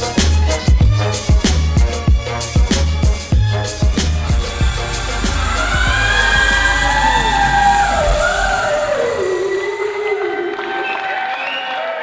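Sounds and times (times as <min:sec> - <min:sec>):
pop band playing: 0:00.0 - 0:10.9.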